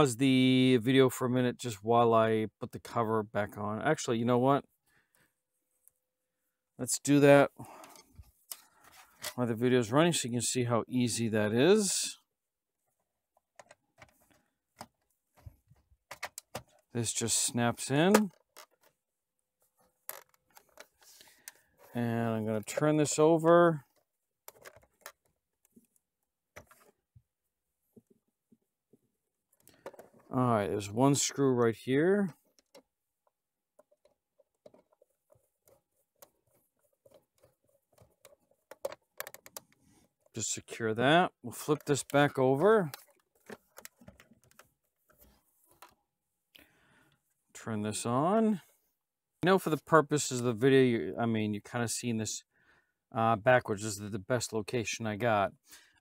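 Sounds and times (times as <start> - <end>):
screwdriver ticks and scrapes: 24.5 - 26.0, 33.8 - 40.2.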